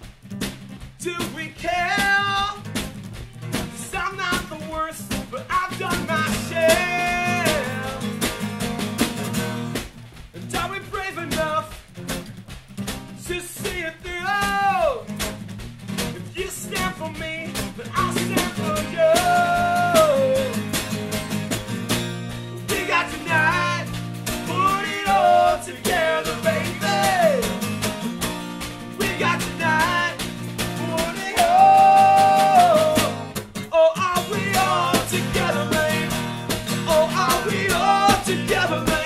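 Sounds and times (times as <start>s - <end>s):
snare drum: 0.0s - 39.0s
strummed acoustic guitar: 0.0s - 39.0s
men singing: 3.8s - 8.2s, 16.3s - 20.9s, 22.6s - 27.7s, 28.9s - 39.0s.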